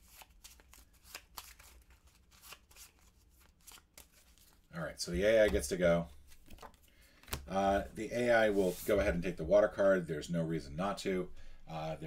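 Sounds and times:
playing cards shuffling: 0.0 - 4.7, 6.2 - 7.5.

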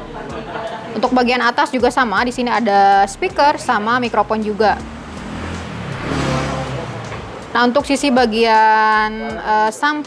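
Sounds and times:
vehicle passing by: 2.2 - 9.3.

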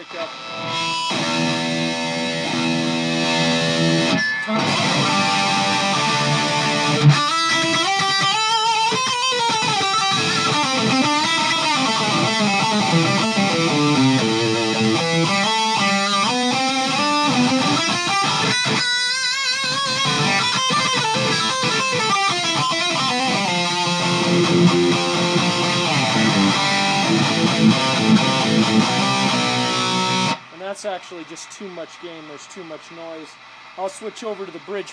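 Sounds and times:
distorted electric guitar: 0.0 - 34.9.

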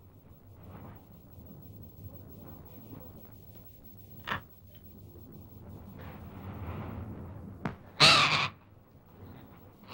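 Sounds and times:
macaw squawking: 8.0 - 8.6.

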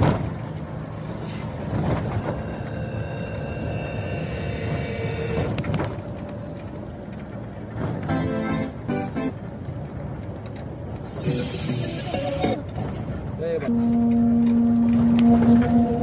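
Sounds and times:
car road and engine noise: 0.0 - 16.0.

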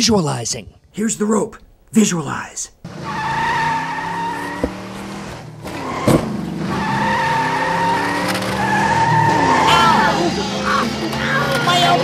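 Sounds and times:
tyres squealing: 3.0 - 12.0
car engine running: 4.1 - 12.0.

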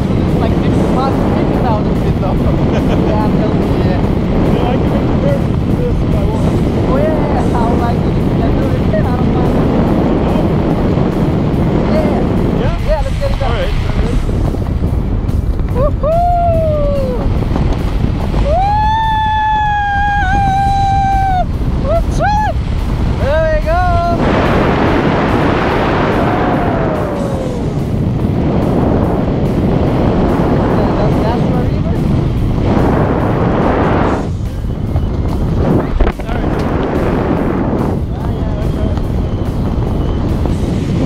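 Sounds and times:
wind rushing over microphone: 0.0 - 41.0.

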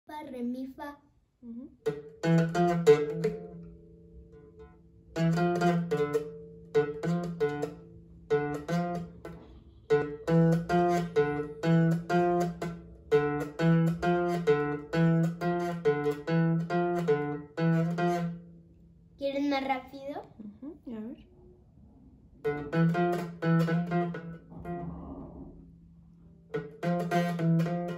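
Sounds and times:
acoustic guitar strumming: 1.8 - 19.8, 22.4 - 27.9.

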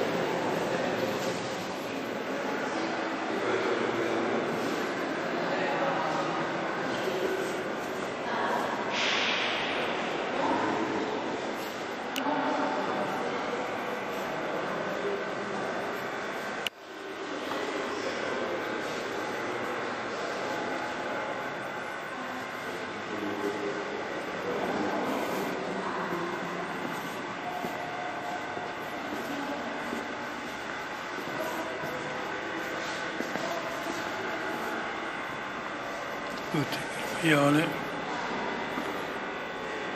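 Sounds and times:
faint indistinct voices: 0.0 - 39.9
steady background noise: 0.0 - 39.9.

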